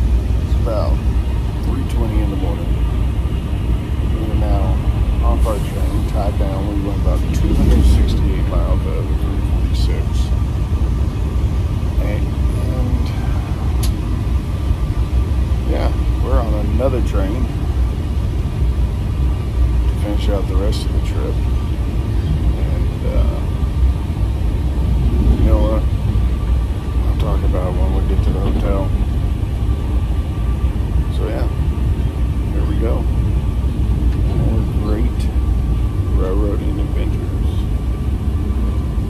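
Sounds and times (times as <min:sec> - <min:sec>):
train rumbling: 0:00.0 - 0:39.0.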